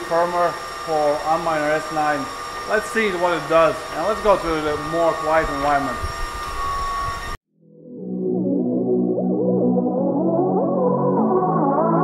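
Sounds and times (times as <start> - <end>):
fan noise with whining tones: 0.0 - 7.4.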